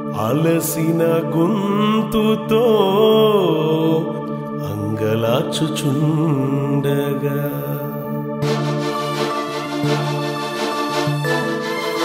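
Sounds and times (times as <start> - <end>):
man singing ornamented line: 0.0 - 8.6
held accompaniment: 8.4 - 12.0.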